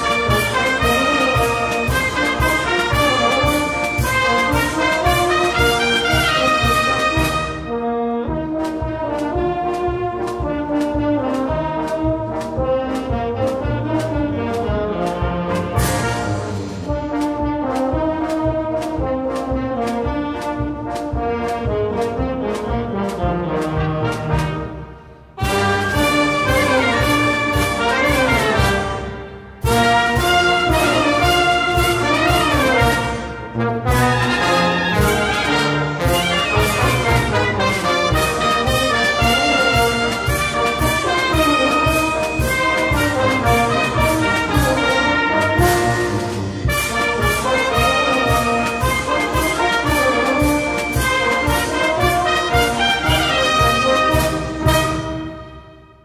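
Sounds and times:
steady drum beat: 0:00.0 - 0:07.7, 0:08.4 - 0:55.2
brass band playing a march: 0:00.0 - 0:56.0.

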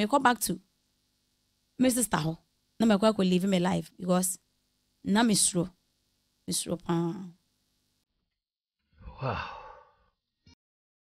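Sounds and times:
person sighing wow: 0:09.0 - 0:10.0.

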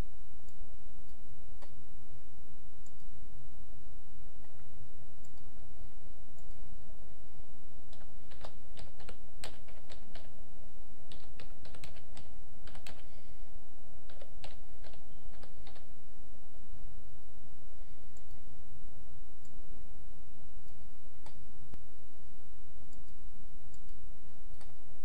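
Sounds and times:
low hum: 0:00.0 - 0:25.0
keyboard typing: 0:07.9 - 0:10.4, 0:11.1 - 0:13.1, 0:14.0 - 0:15.9.

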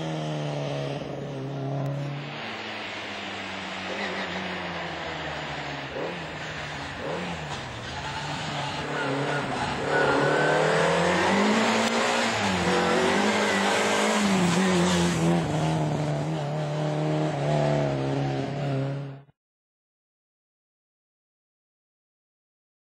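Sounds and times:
rally car engine revving: 0:00.0 - 0:19.3.

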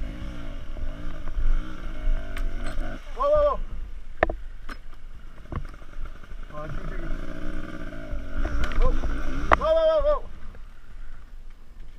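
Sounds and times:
man shouting: 0:03.1 - 0:03.7, 0:09.6 - 0:10.4.

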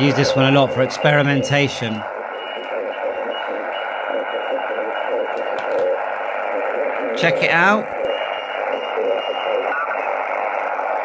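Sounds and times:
radio band noise hiss: 0:00.0 - 0:11.0.

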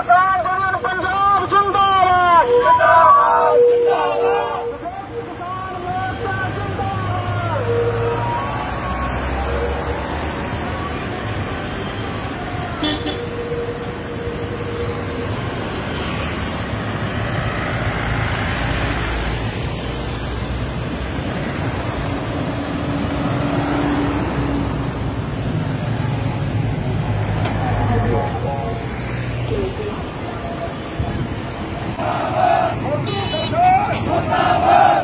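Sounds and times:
road traffic rumble: 0:00.0 - 0:35.0
car horn: 0:02.2 - 0:05.5, 0:12.8 - 0:13.8, 0:32.9 - 0:33.8.

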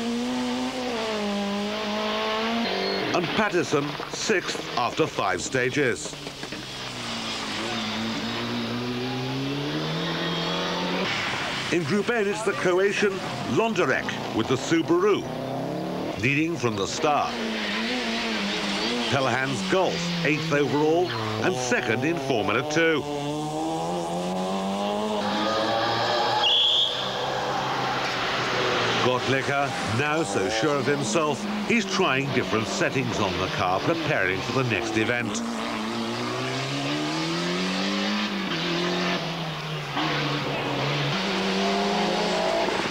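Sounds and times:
car engine accelerating: 0:00.0 - 0:05.2, 0:05.9 - 0:42.9
tyre squeal: 0:02.5 - 0:03.2, 0:25.2 - 0:28.2.

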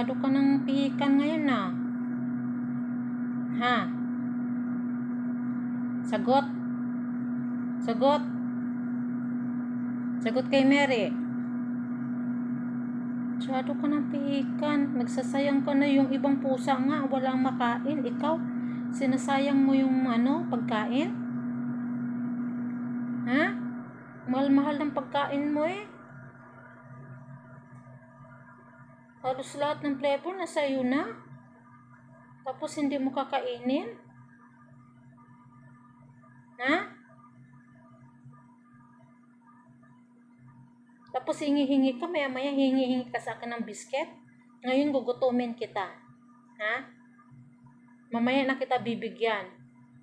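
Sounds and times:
machine humming: 0:00.0 - 0:50.0.

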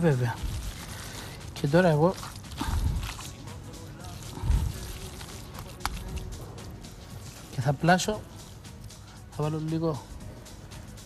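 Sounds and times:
wet squishing of kneaded meat: 0:00.0 - 0:08.2
faint background music: 0:00.0 - 0:11.0.

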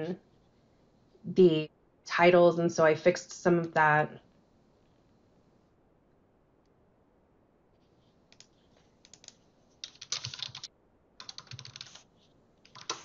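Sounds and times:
typing on computer keyboard: 0:08.3 - 0:13.0.

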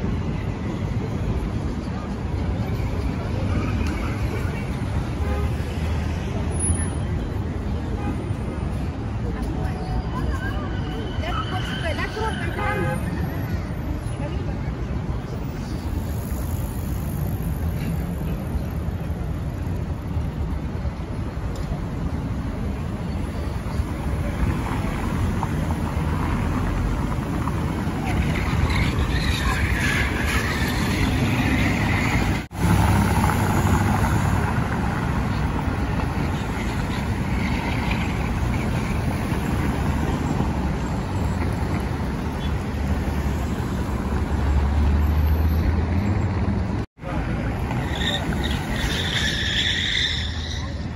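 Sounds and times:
passing car traffic: 0:00.0 - 0:50.9.

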